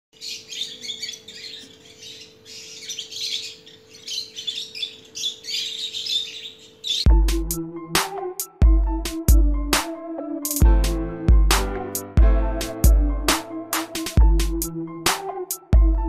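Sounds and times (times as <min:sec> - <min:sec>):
chicks chirping: 0:00.2 - 0:07.2
electronic music: 0:07.1 - 0:16.0
bass hit: 0:10.6 - 0:14.7.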